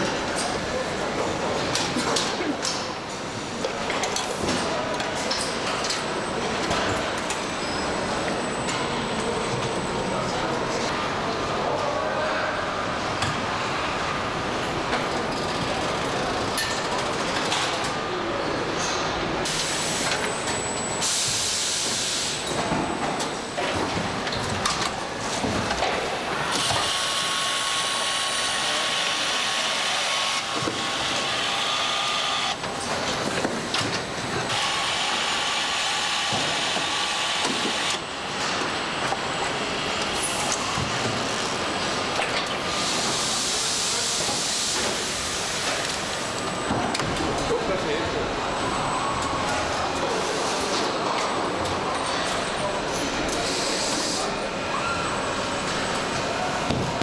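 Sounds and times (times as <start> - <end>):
assembly-line machinery hiss and clatter: 19.4 - 20.3, 21.0 - 22.6, 25.6 - 32.6, 42.2 - 46.4, 53.3 - 54.3
assembly line machinery din: 19.4 - 54.6.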